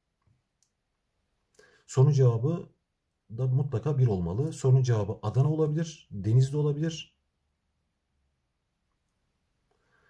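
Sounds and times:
man speaking: 1.9 - 7.2.

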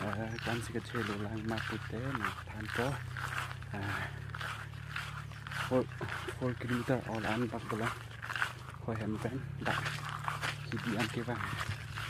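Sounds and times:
man talking: 0.0 - 4.4, 5.5 - 8.0, 8.8 - 12.0
low hum: 0.0 - 12.0.

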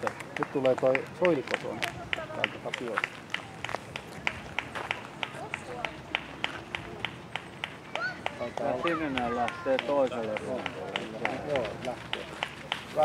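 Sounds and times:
person clapping steadily: 0.0 - 13.0.

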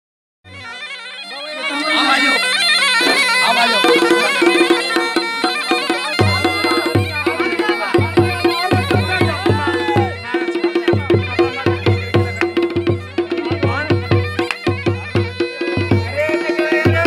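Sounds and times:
bagpipe folk melody over drone: 0.5 - 17.0
quick drum rhythm: 3.0 - 17.0.

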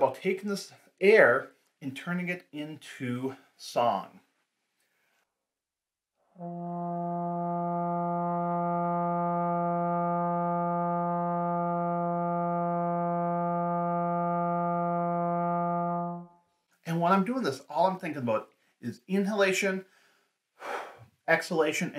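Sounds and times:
trombone long tone: 6.4 - 16.4.

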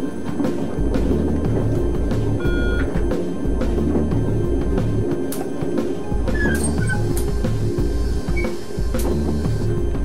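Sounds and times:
music with drumbeat: 0.2 - 10.0.

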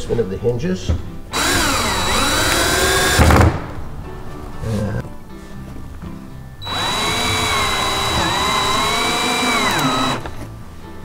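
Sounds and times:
cordless drill driving screw: 1.3 - 3.3, 6.6 - 10.4.

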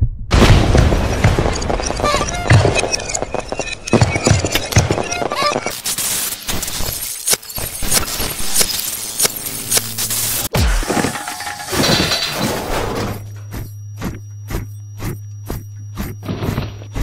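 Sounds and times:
steady low hum: 8.3 - 17.0
cartoon crashes and shattering: 10.5 - 13.2
clattering noise: 10.6 - 14.2.

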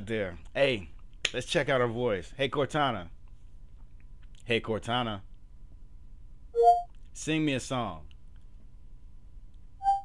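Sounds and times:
faint background hiss: 0.0 - 9.8
electronic assistant tone: 6.6 - 6.9.

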